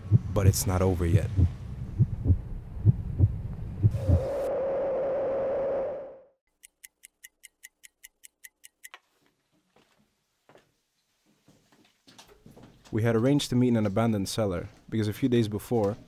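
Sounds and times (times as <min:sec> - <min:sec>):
deep thumps: 0:01.1 - 0:04.3
sharp ticks: 0:06.5 - 0:09.0.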